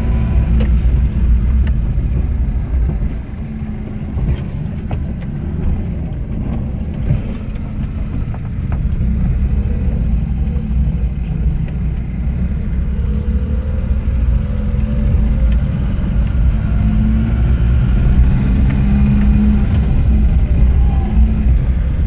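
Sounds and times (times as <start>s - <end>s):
road noise: 0.0s - 22.0s
vehicle engine rumble: 0.0s - 22.0s.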